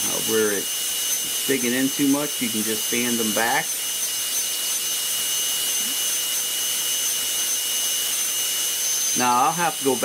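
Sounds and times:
rotary tool high-pitched whine: 0.0 - 10.0.

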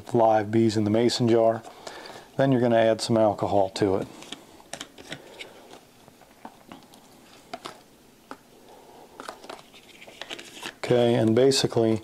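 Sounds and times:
plastic bottle crinkling: 9.2 - 11.3.

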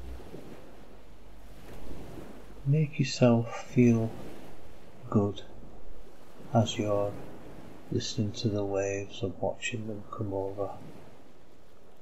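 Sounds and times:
ocean waves breaking: 0.0 - 12.0.

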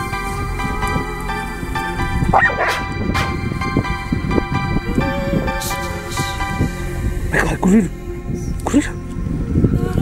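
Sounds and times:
music with sustained notes: 0.0 - 10.0
dog yelping bark: 2.4 - 2.9.

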